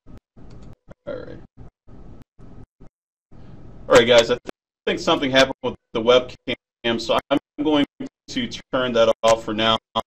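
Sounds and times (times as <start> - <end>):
man speaking drawn out: 1.0 - 1.5, 3.9 - 10.0.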